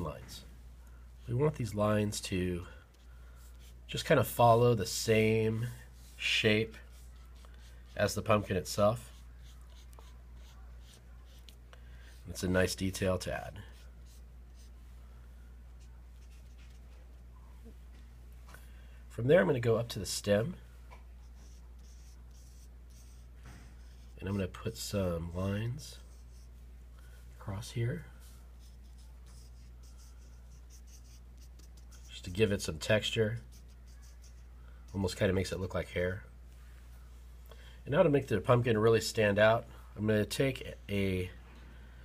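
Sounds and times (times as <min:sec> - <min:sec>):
marker scratching on paper: 0:02.9 - 0:03.8, 0:06.0 - 0:11.6, 0:13.6 - 0:14.8, 0:15.8 - 0:17.2, 0:21.2 - 0:24.6, 0:26.0 - 0:26.6, 0:28.2 - 0:32.8, 0:33.4 - 0:35.1.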